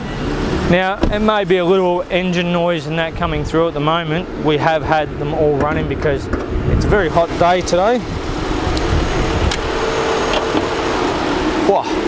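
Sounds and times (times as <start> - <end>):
car air conditioning hum: 0.0 - 12.0.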